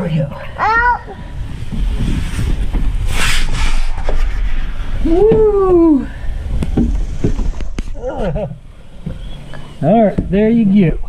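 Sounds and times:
people sliding down tube slide: 0:01.0 - 0:07.9.

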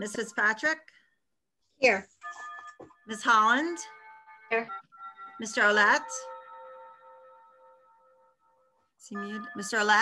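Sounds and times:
bell-like chime: 0:02.2 - 0:10.0.

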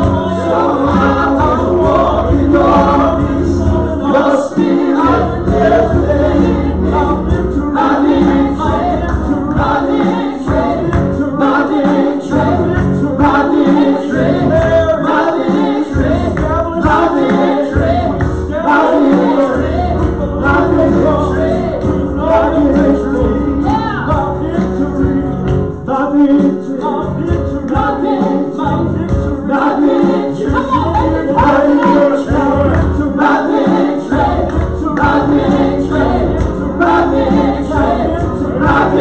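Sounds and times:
acoustic guitar: 0:00.0 - 0:39.0
group singing gospel: 0:00.0 - 0:39.0
piano: 0:00.0 - 0:39.0.

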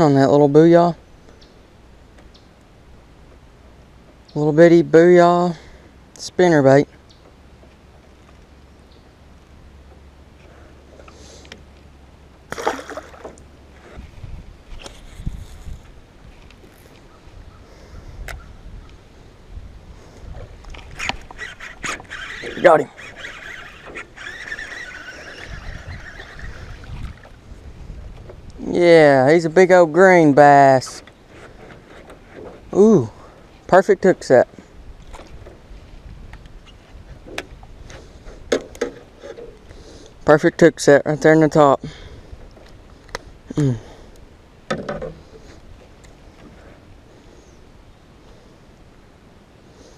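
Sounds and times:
fish splashing into water: 0:12.5 - 0:13.4
sharp clicks of fishing reel: 0:21.0 - 0:26.9.

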